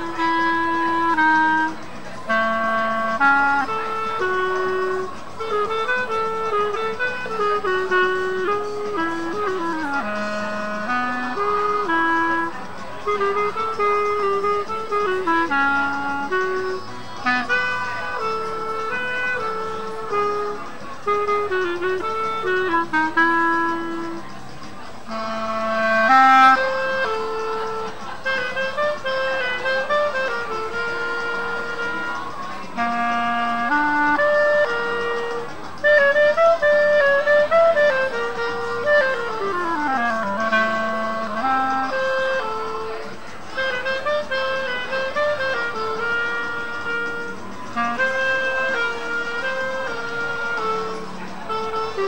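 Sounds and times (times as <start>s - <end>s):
clarinet melody: 0.0s - 52.0s.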